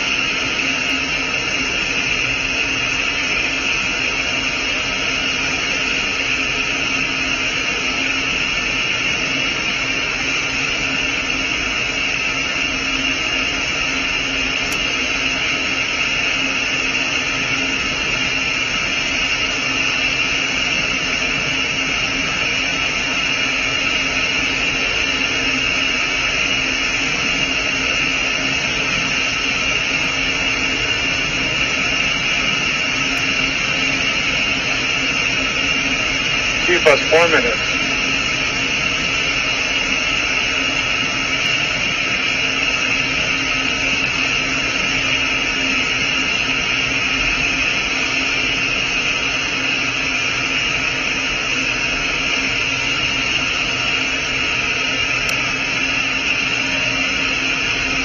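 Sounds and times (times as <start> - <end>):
constant low hum: 0.0 - 58.0.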